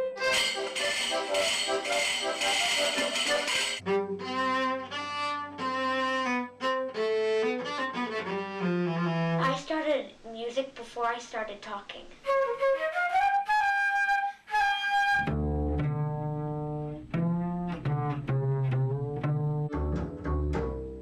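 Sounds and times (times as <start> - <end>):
accordion playing: 0.0 - 5.6
cello bowing slow melody: 0.0 - 9.5, 14.5 - 21.0.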